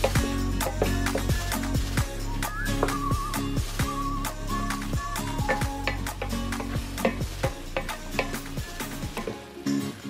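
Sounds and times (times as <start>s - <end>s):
background music: 0.0s - 10.0s
meat and onion sizzling in a pot: 0.0s - 10.0s
wooden spoon scraping a pot: 5.2s - 9.4s.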